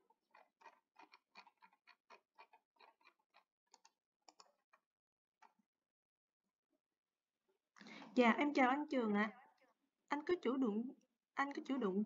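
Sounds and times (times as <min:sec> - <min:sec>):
faint irregular clicks: 0:00.0 - 0:05.6.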